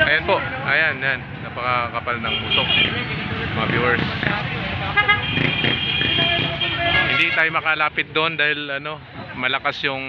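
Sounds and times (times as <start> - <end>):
road traffic rumble: 0.0 - 10.0
vehicle horn long blast: 5.0 - 7.5.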